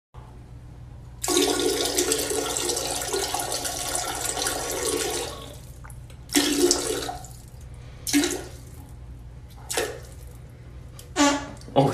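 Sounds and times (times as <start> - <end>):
urine splashing into toilet water: 1.2 - 10.4.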